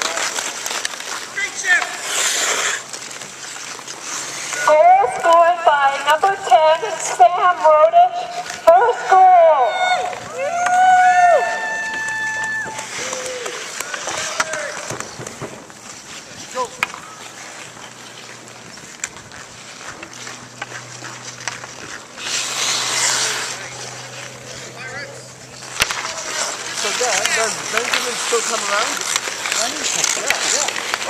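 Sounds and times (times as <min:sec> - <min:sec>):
skate blade scraping ice: 0:00.0 - 0:31.0
skates on ice: 0:00.0 - 0:31.0
long drawn-out shouts: 0:09.3 - 0:14.9.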